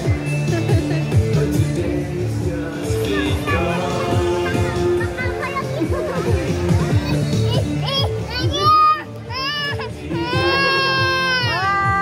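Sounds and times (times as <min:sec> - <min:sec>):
background music: 0:00.0 - 0:12.0
toddler wailing: 0:07.0 - 0:12.0.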